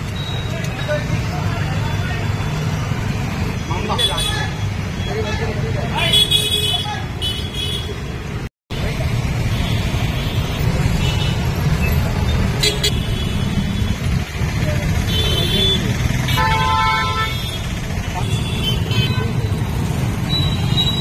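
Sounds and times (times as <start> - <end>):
street traffic: 0.0 - 21.0
vehicle horn honking: 15.1 - 17.6.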